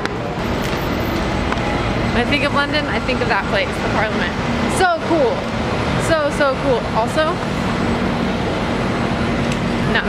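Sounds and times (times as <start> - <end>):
bus engine hum: 0.0 - 10.0
street road noise: 0.0 - 10.0.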